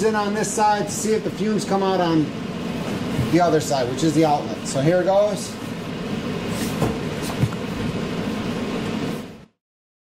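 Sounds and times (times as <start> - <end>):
air purifier fan running: 0.0 - 9.6.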